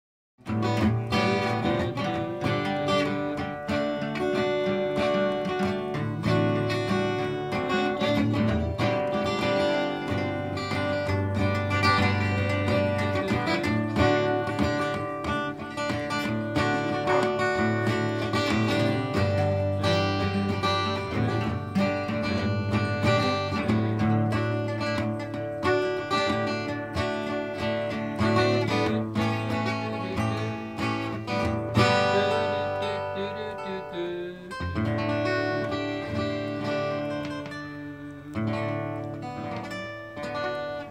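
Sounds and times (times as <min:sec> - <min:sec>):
acoustic guitars playing: 0:00.4 - 0:40.9.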